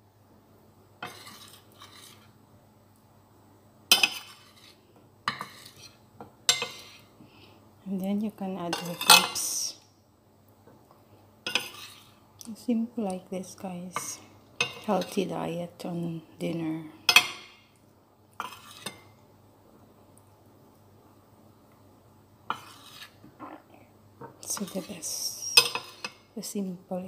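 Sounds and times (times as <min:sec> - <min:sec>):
metal spoon scraping ceramic plate: 0:01.0 - 0:02.3, 0:11.5 - 0:12.1, 0:18.4 - 0:19.0, 0:22.5 - 0:23.2
tableware scraping and handling: 0:01.0 - 0:02.3, 0:03.9 - 0:07.1, 0:08.7 - 0:09.5, 0:11.5 - 0:12.1, 0:18.4 - 0:19.1, 0:22.5 - 0:23.2, 0:24.2 - 0:26.2.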